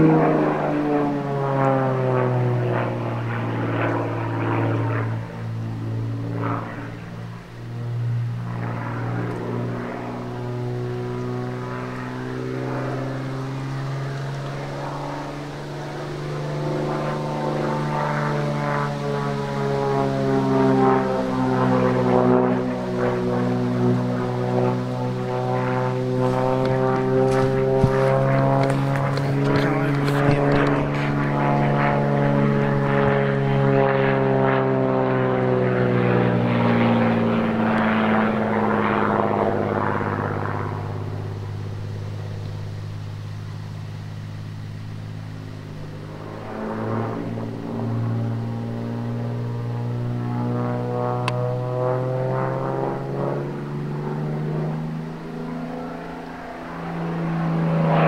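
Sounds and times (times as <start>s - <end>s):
propeller plane engine drone: 0.0s - 58.0s.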